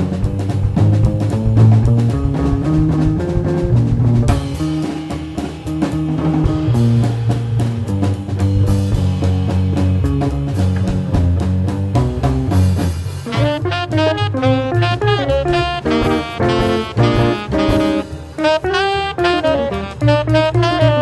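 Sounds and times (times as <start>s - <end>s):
drum kit with cymbals: 0.0s - 21.0s
hollow-body electric guitar: 0.0s - 21.0s
upright bass: 0.0s - 21.0s.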